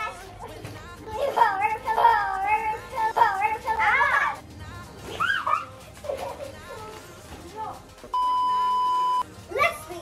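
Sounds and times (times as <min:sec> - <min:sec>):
electronic test-tone beep: 0:08.1 - 0:09.2.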